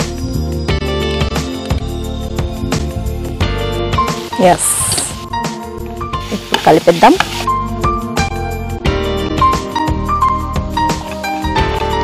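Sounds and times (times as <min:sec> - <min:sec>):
background music: 0:00.0 - 0:12.0
spatula stirring in a pan: 0:06.2 - 0:07.5
vegetables sizzling in a pan: 0:06.2 - 0:07.5.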